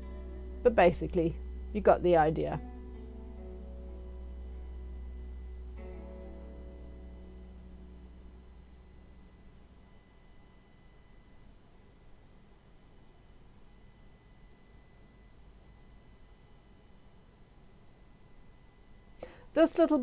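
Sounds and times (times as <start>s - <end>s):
background music: 0.0s - 9.4s.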